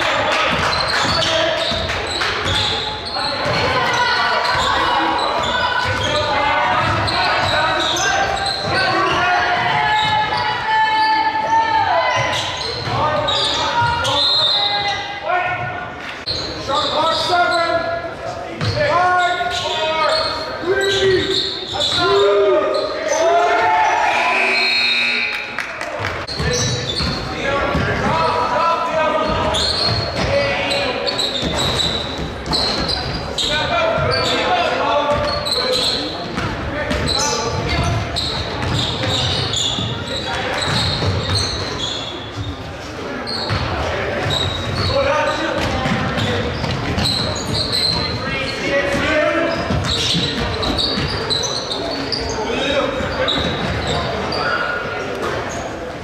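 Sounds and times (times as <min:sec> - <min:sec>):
basketball bouncing on hardwood floor: 0:38.6 - 0:39.0.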